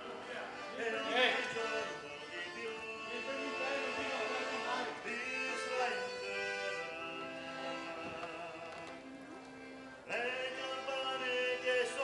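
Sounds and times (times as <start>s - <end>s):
instrumental accompaniment: 0.0s - 12.0s.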